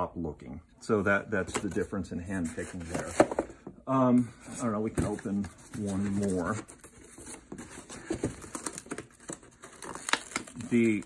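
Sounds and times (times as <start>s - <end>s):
hands handling cardboard box: 1.4s - 3.8s, 4.4s - 11.0s.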